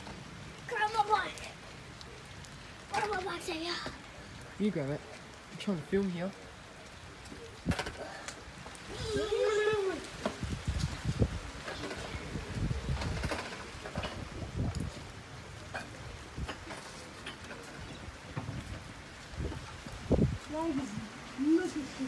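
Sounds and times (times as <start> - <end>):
rain falling: 0.0 - 22.0
wind buffeting microphone: 7.1 - 22.0.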